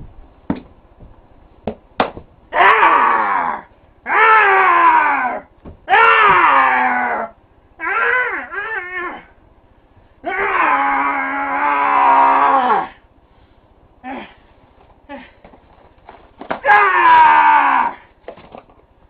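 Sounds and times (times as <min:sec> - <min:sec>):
man screaming in rage: 0:02.5 - 0:09.3, 0:10.2 - 0:13.0, 0:16.6 - 0:18.0.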